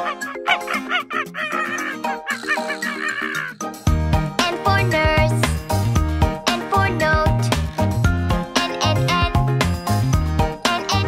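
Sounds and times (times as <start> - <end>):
cheerful background music: 0.0 - 11.0
hen clucking: 0.4 - 3.7.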